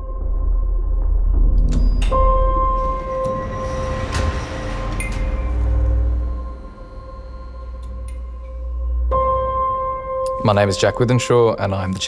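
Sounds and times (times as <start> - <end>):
low rumble: 0.0 - 11.1
steady hum tone: 1.6 - 10.3.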